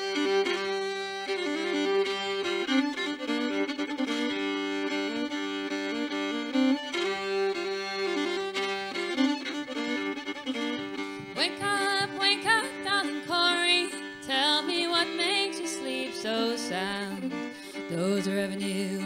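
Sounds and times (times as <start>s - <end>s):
bowed fiddle melody: 0.0s - 19.0s.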